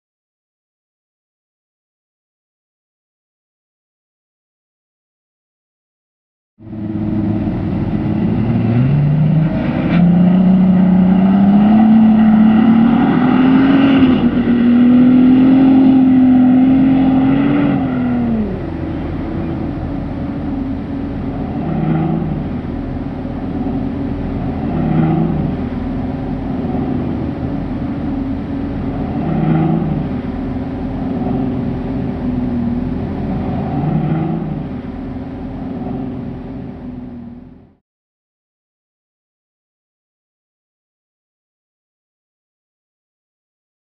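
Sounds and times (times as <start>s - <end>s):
suv engine revving: 6.6s - 37.8s.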